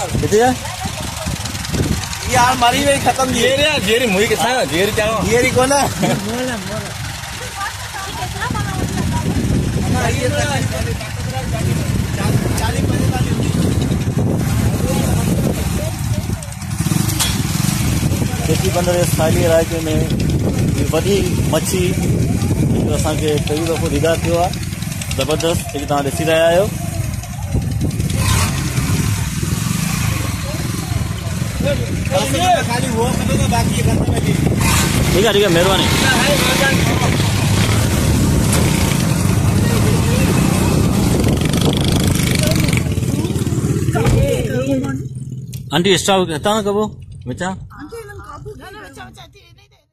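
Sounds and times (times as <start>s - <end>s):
people talking: 0.0s - 16.7s, 18.1s - 28.5s, 29.9s - 37.9s, 39.3s - 40.9s, 41.5s - 45.1s, 45.7s - 49.9s
vehicle engine rumbling: 0.0s - 49.9s.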